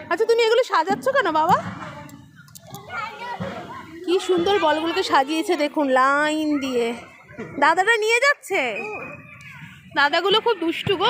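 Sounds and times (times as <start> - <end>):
children talking and calling: 0.0 - 11.0.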